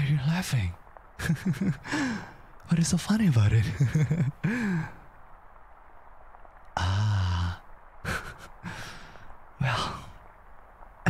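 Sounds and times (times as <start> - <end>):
man laughing softly: 1.2 - 2.3, 3.6 - 5.0, 8.0 - 8.9.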